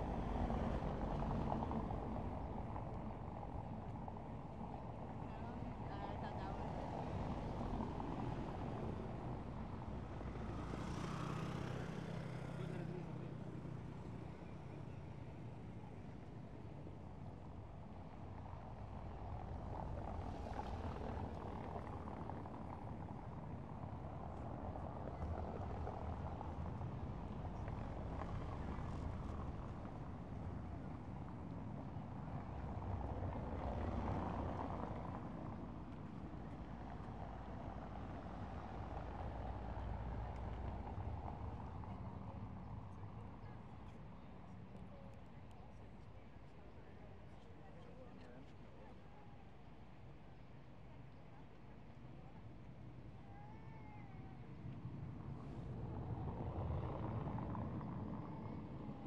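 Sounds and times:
aircraft passing overhead: 0:00.0 - 0:45.0, 0:52.2 - 0:59.0
distant traffic rumble: 0:00.0 - 0:59.0.

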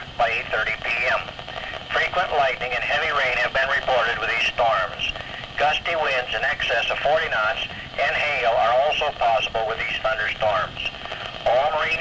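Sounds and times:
announcer speaking over radio: 0:00.2 - 0:12.0.

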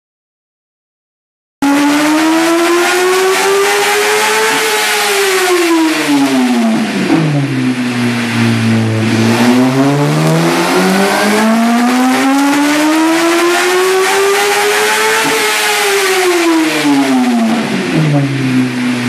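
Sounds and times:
motorcycle engine revving on dyno: 0:01.6 - 0:19.0.

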